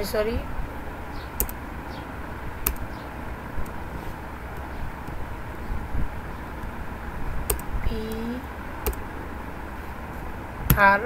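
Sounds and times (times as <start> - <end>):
low background rumble: 0.0 - 11.0
computer keyboard keystrokes: 1.4 - 1.6, 2.6 - 3.0, 7.5 - 9.1.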